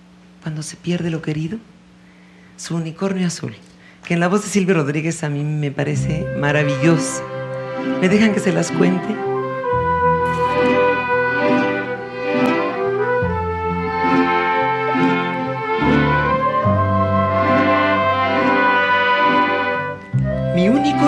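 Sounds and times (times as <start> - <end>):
held bass notes: 5.9 - 21.0
bowed strings playing melody: 6.0 - 21.0.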